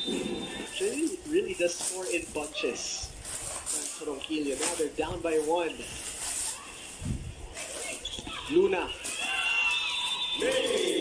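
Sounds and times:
plastic sack rustling: 0.0s - 9.7s.

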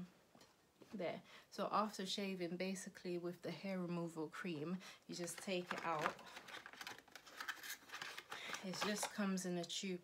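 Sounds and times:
cardboard box rustling: 5.3s - 9.1s.

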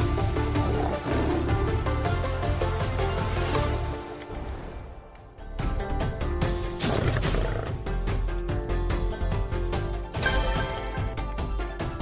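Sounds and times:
looping game music: 0.0s - 12.0s.

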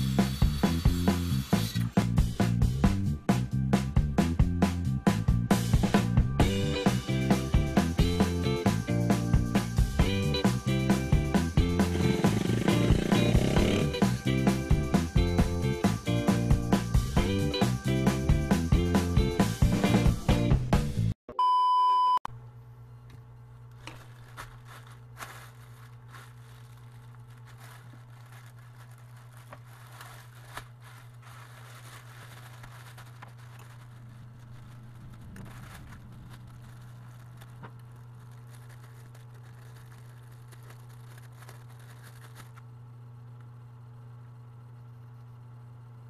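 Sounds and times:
steady low hum: 3.9s - 18.1s, 22.3s - 46.0s
plastic packaging crinkling and tearing: 23.7s - 42.6s.

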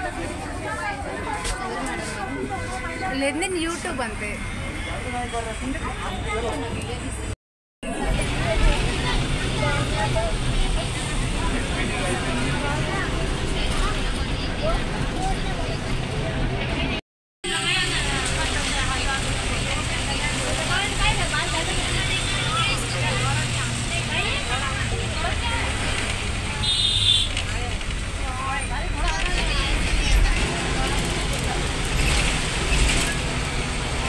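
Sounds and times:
road and traffic noise: 0.0s - 34.0s
bus engine hum: 5.4s - 34.0s.

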